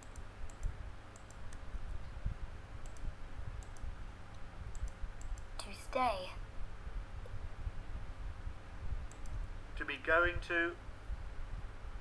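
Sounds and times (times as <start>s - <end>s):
computer mouse clicking: 0.0s - 2.0s, 2.8s - 5.5s, 9.1s - 9.4s.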